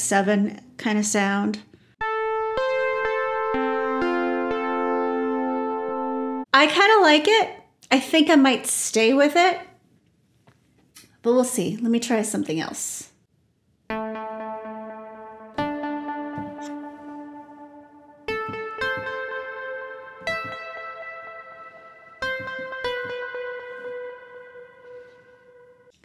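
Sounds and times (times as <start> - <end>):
plucked synth keyboard notes: 2.0 - 6.5, 13.9 - 25.9.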